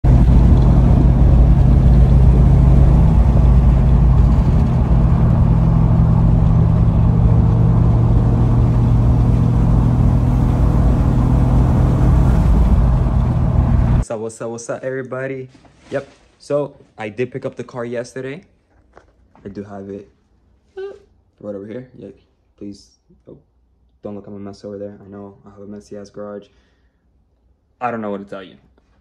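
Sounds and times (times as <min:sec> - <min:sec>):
car engine droning: 0:00.0 - 0:14.0.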